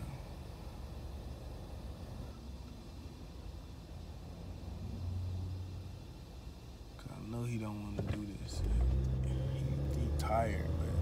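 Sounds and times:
car rumble from inside cabin: 7.0s - 11.0s.

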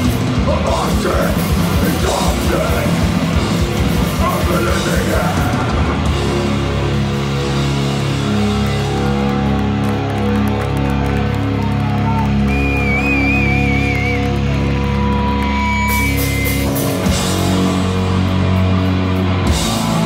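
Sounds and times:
punk band playing: 0.0s - 20.0s.

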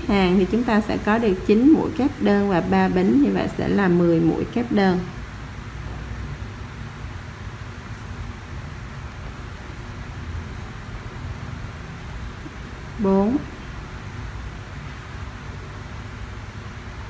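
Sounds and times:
faint background hiss: 0.0s - 17.0s.

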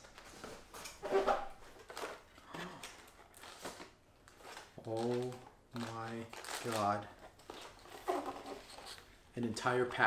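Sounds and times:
cardboard packaging rustling: 0.0s - 9.1s.

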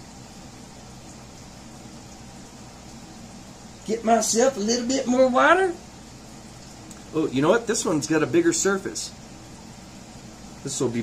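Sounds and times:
low room noise hiss: 0.0s - 11.0s.

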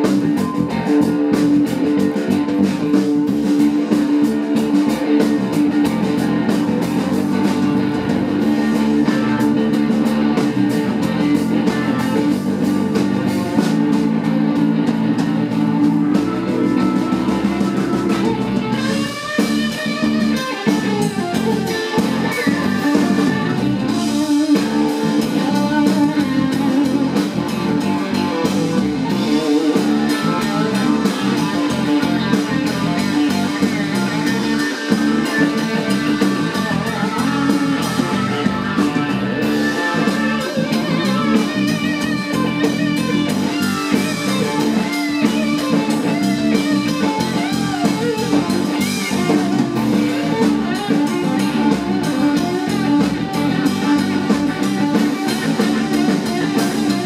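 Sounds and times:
bass guitar: 0.0s - 57.0s
drum kit: 0.0s - 57.0s
lead electric guitar: 0.0s - 57.0s.

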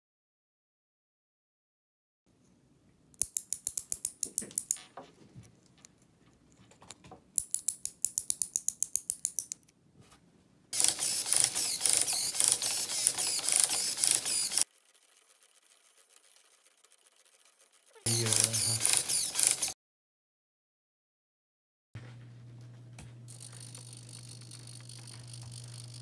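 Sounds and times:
plastic gear clicking: 3.2s - 4.8s, 6.6s - 9.6s, 10.8s - 19.7s, 23.3s - 26.0s
servo motor gear rattle: 10.8s - 19.7s.

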